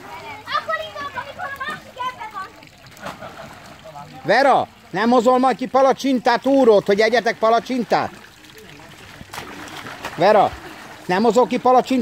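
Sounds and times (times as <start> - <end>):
water splashing in a pool: 0.0 - 12.0.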